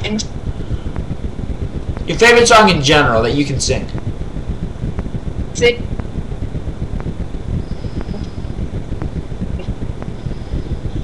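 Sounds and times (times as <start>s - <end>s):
low rumbling microphone noise: 0.0s - 11.0s.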